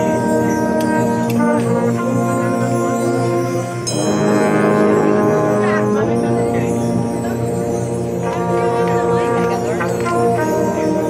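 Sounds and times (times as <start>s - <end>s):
brass section playing held notes: 0.0s - 11.0s.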